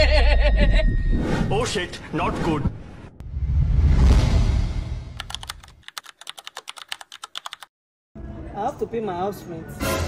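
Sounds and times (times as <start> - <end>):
loud low whoosh: 2.6 - 5.2
keyboard typing clicks: 5.2 - 7.7.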